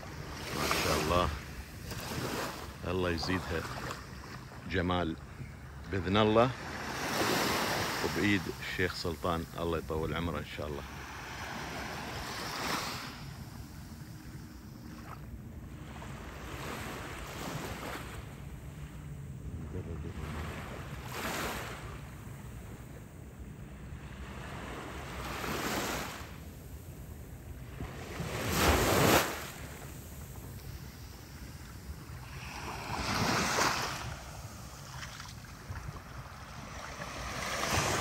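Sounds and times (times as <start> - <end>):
waves washing onto beach: 0.0 - 5.2, 5.8 - 22.9, 24.0 - 38.0
wind rumbling on microphone: 26.8 - 38.0.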